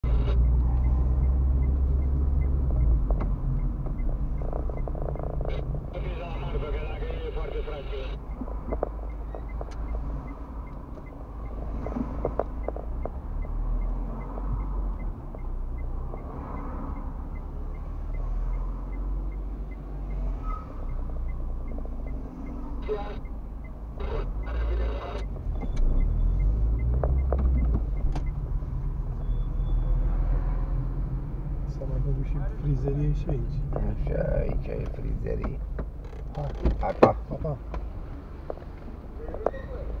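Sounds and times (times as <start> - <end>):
engine and road rumble: 0.0 - 40.0
faint regular ticking: 0.3 - 5.9, 6.7 - 20.2, 20.8 - 28.6.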